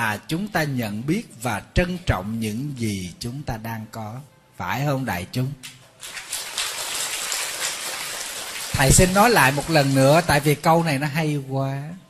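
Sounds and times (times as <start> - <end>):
audience applauding: 6.0 - 10.6.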